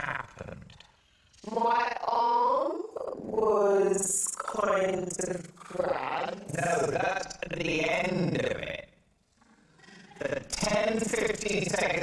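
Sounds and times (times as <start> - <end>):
person speaking: 0.0 - 12.0.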